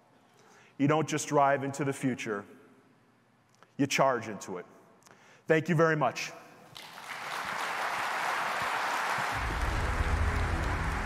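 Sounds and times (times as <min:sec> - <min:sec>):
audience applauding: 0:06.8 - 0:11.0
music with deep bass: 0:09.4 - 0:11.0.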